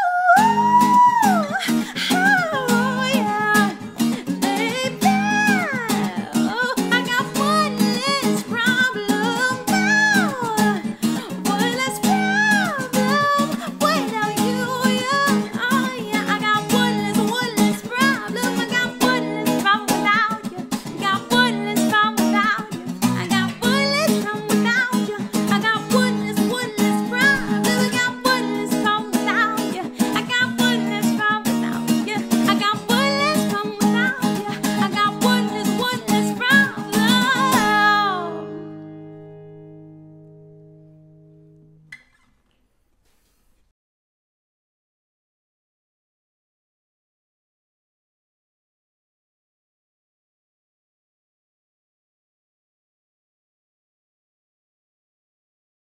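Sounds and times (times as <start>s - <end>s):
woman singing pop melody: 0.0s - 38.7s
strummed acoustic guitar: 0.4s - 42.3s.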